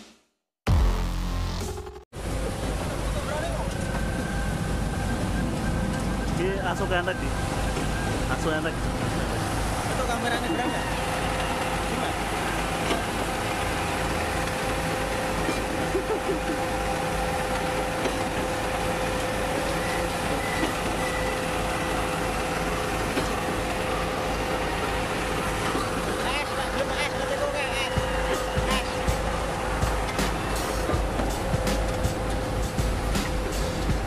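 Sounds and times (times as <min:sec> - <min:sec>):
constant machine whine: 0:01.0 - 0:34.0.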